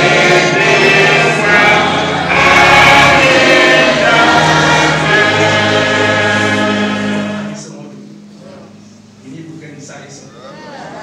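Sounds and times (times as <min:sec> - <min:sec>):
congregation singing a hymn: 0:00.0 - 0:08.7.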